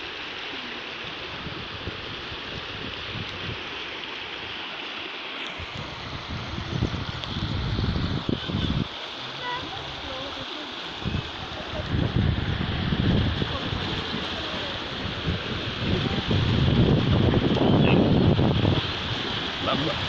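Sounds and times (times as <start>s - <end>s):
floodwater rushing: 0.0s - 20.0s
low rumbling: 11.0s - 20.0s.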